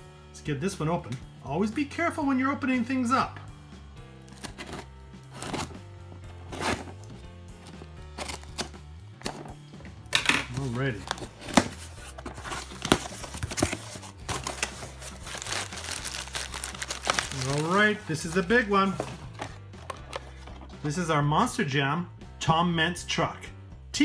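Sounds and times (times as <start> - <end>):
cardboard box handled: 4.3 - 5.8, 6.4 - 9.5, 10.9 - 20.8
crumpled paper rustling: 10.5 - 20.7.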